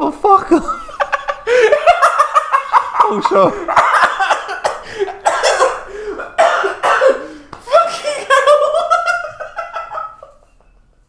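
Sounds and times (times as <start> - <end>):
man coughing: 3.0 - 8.4.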